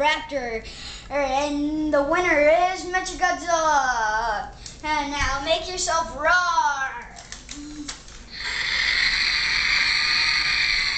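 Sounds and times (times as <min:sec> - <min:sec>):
toy speaker hissing: 0:08.4 - 0:10.9.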